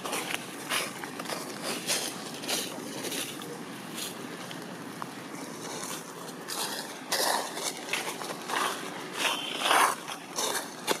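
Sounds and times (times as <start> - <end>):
dry leaves rustling and crunching: 0.0 - 4.7, 5.3 - 11.0
outdoor noise: 0.0 - 11.0.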